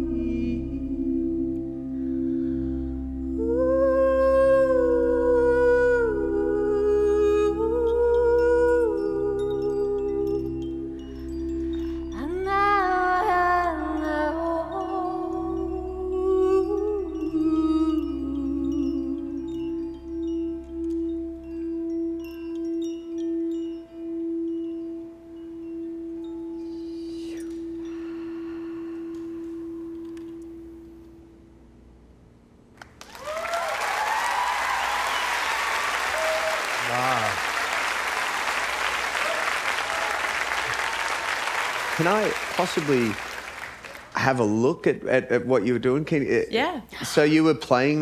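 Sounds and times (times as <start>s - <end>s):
singing bowl ringing: 4.8s - 31.2s
faint high chimes tinkling: 7.8s - 31.0s, 34.2s - 48.0s
audience applause and cheering: 32.8s - 44.3s.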